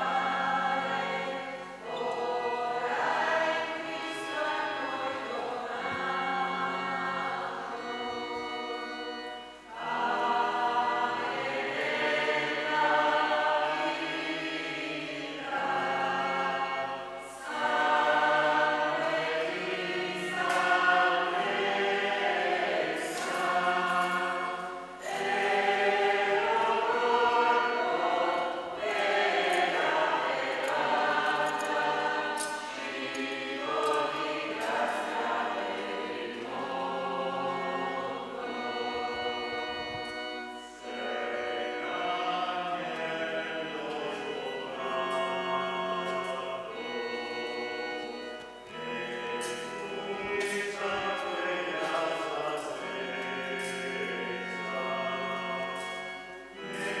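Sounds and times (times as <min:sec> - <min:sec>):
church choir singing a hymn: 0:00.0 - 0:57.0.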